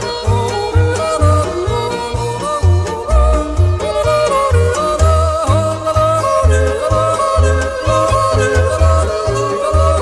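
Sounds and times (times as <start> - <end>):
polka band with bass beat: 0.0 - 10.0
man yodeling: 3.0 - 10.0.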